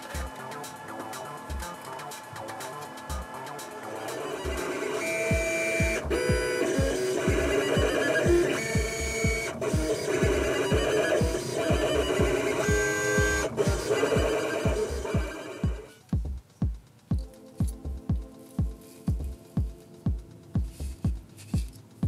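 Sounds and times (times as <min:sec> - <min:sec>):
cutting plotter motors whining: 0:00.0 - 0:16.0
electronic music with kick drum: 0:00.0 - 0:22.0.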